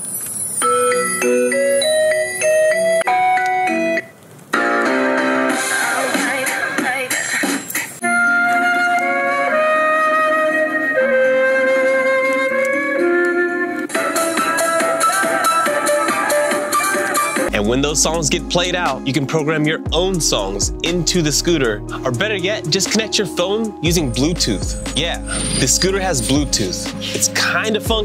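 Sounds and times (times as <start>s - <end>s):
short electronic melodies: 23.9s - 26.9s.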